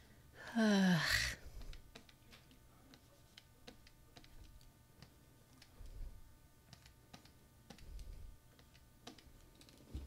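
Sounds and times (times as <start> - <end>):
woman sighing: 0.4 - 1.5.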